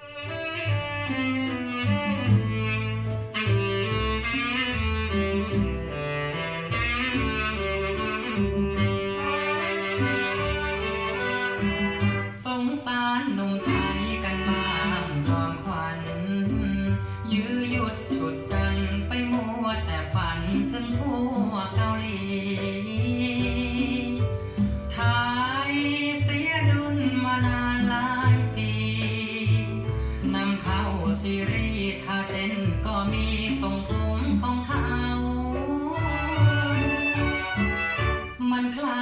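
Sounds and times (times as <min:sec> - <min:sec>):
music through loudspeakers: 0:00.0 - 0:39.0.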